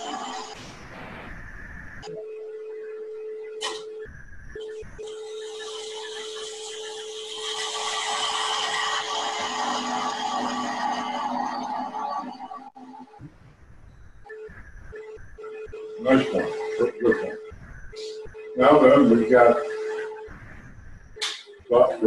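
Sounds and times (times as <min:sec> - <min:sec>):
gouge cutting wood hiss: 0:05.0 - 0:10.6
wood lathe whining: 0:05.1 - 0:13.2.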